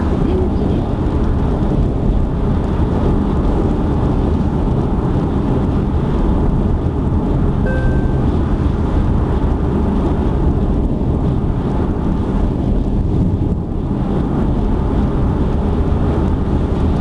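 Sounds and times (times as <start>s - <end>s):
car cabin road and engine rumble: 0.0s - 17.0s
faint beep: 7.7s - 8.5s.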